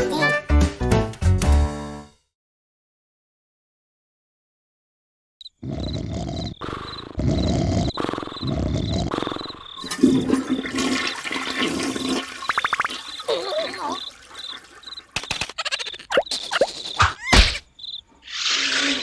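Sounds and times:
crickets chirping: 0:05.4 - 0:10.3, 0:12.0 - 0:19.0
rushing gurgling water: 0:09.8 - 0:15.2.

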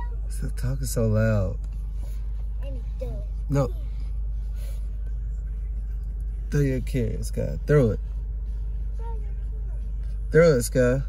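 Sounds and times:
car idling from inside: 0:00.0 - 0:11.0.

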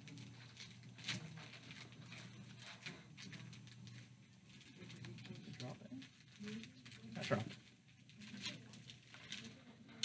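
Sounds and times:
low room hum: 0:00.0 - 0:10.0
medical equipment clicks and rustles: 0:00.0 - 0:10.0.

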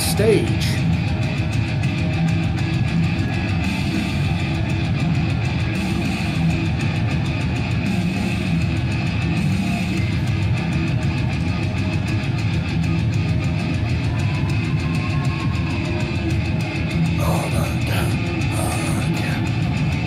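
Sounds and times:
thrash metal music: 0:00.0 - 0:20.0.

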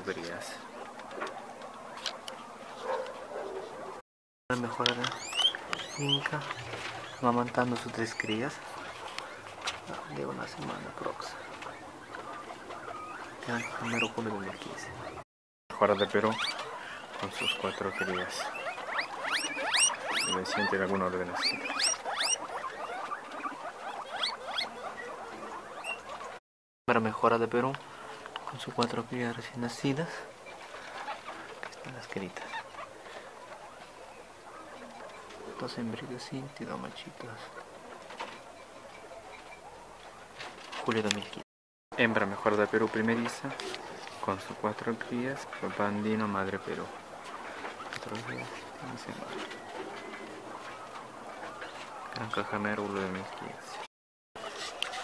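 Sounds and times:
guinea pigs squeaking: 0:00.0 - 0:26.4, 0:27.0 - 0:41.4, 0:42.0 - 0:55.0
soft low animal calls: 0:04.7 - 0:15.2, 0:15.8 - 0:26.4.

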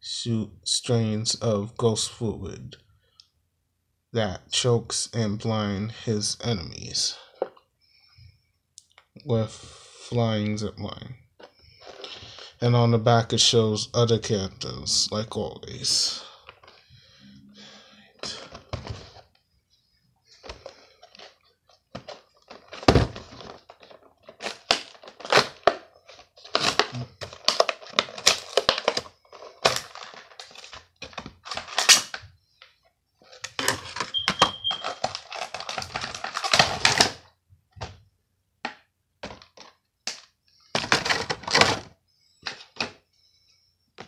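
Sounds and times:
plastic packaging crinkling: 0:21.9 - 0:32.2, 0:33.3 - 0:37.2.

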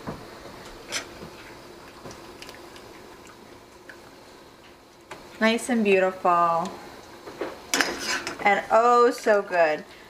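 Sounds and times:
faint steady hum: 0:00.0 - 0:10.0
liquid dripping: 0:01.8 - 0:05.4.

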